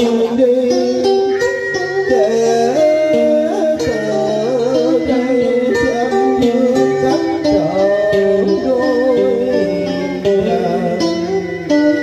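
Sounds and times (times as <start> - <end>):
instrumental accompaniment: 0.0 - 12.0.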